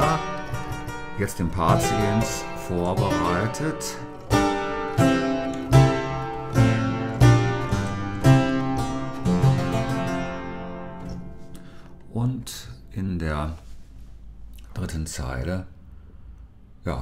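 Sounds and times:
harpsichord chords: 0:00.0 - 0:13.0.

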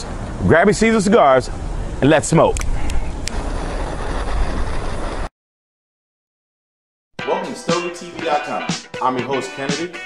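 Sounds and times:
heavy low rumble: 0:01.5 - 0:05.3.

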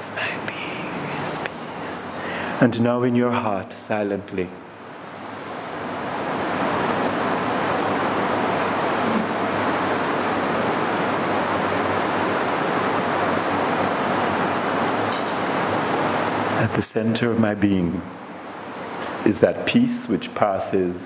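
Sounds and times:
steady rushing hiss: 0:00.0 - 0:21.0.

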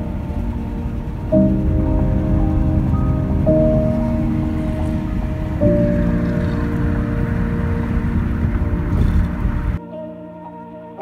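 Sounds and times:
car road and wind rumble: 0:00.0 - 0:09.8
ambient music: 0:00.0 - 0:11.0.

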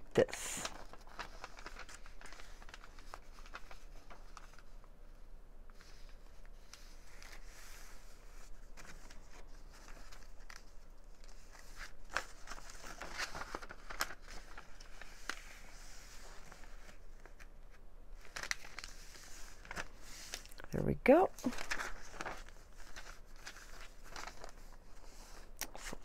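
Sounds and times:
paper rustling and crinkling: 0:00.2 - 0:20.7, 0:21.4 - 0:26.0.

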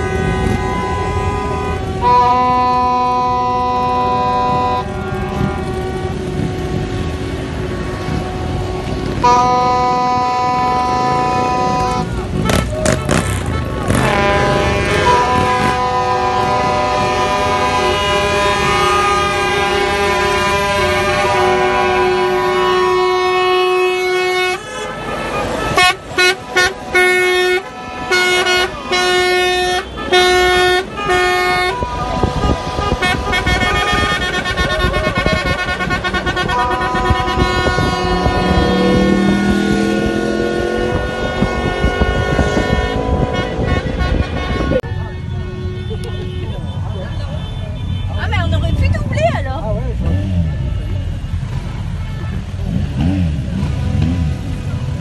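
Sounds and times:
car horns honking: 0:00.0 - 0:55.0
truck air horns honking: 0:00.0 - 0:55.0.

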